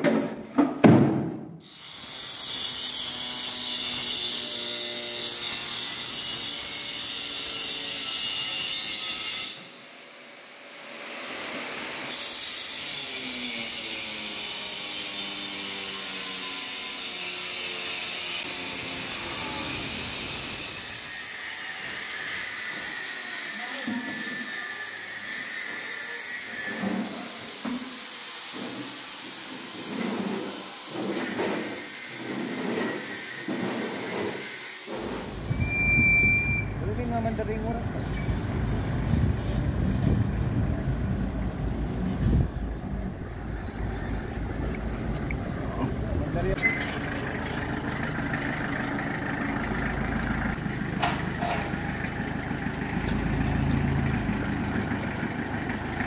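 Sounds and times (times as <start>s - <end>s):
angle grinder cutting: 1.6s - 35.7s, 43.2s - 56.0s.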